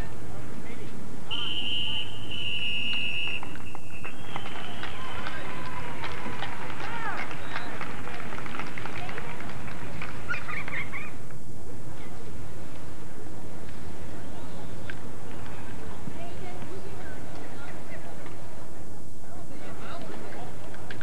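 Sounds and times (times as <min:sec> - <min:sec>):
referee's whistle blast: 0:01.3 - 0:05.0
people shouting: 0:04.6 - 0:07.2.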